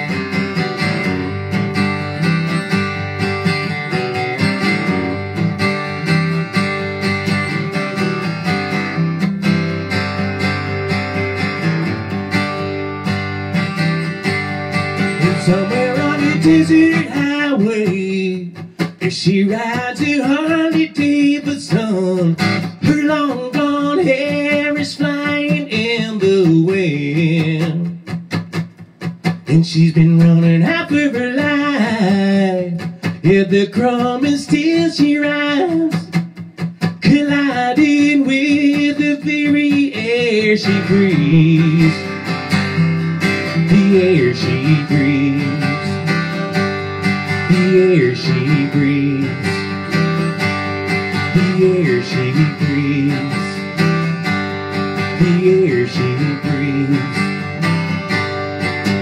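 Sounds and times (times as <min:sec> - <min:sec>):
strummed acoustic guitar: 0:00.0 - 0:59.0
man singing: 0:14.8 - 0:28.2, 0:29.3 - 0:58.0.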